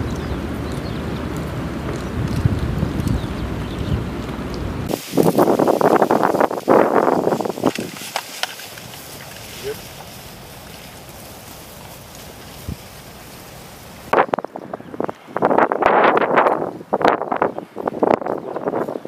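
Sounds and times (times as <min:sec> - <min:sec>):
tall grass rustling: 0:00.0 - 0:19.0.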